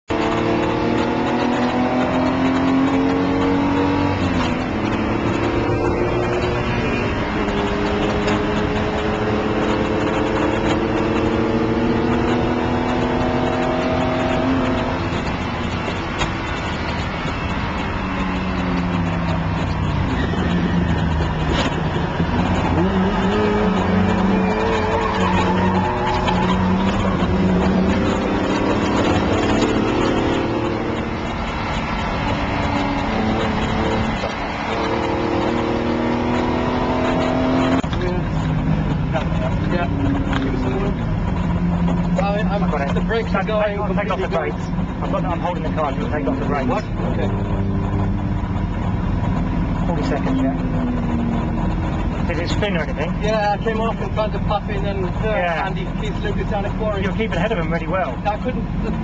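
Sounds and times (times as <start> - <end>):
race car engine revving: 0.1 - 59.0.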